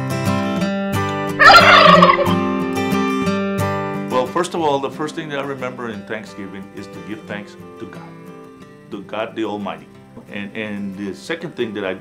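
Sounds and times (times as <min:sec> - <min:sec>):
acoustic guitar music: 0:00.0 - 0:12.0
turkey gobbling: 0:01.4 - 0:02.5.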